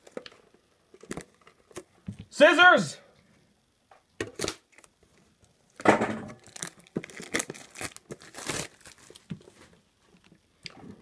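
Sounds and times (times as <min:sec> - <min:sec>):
plastic shrink wrap tearing: 0:00.0 - 0:01.8, 0:04.3 - 0:05.0, 0:06.3 - 0:09.3.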